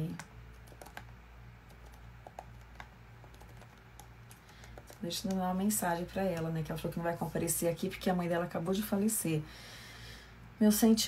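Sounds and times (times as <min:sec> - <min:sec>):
keyboard typing clicks: 0:00.0 - 0:05.5.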